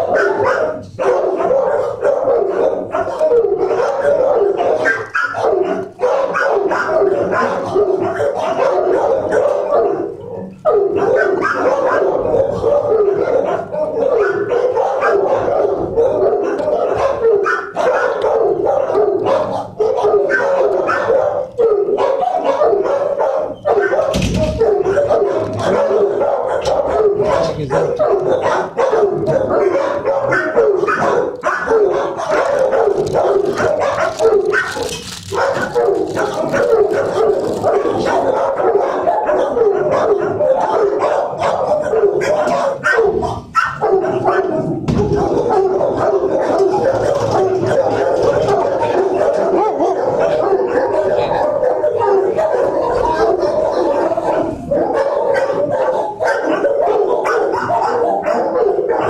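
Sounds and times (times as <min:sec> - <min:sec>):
dogs barking: 0:00.0 - 0:59.0.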